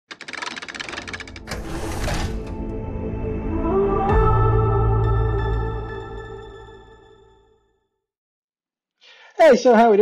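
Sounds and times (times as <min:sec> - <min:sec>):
rapid ticking clicks: 0:00.1 - 0:01.5
intro music: 0:01.2 - 0:07.5.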